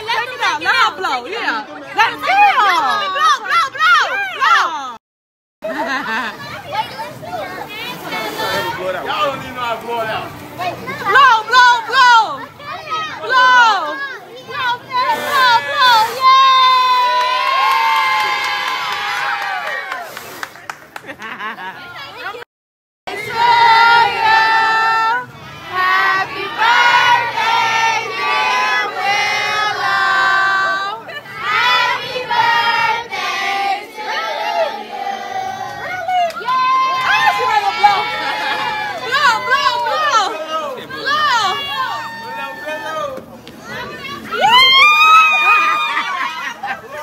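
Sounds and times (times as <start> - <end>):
crowd chattering and calling out: 0.0 - 5.0, 5.6 - 17.1, 23.1 - 47.0
voices singing together: 23.1 - 36.1.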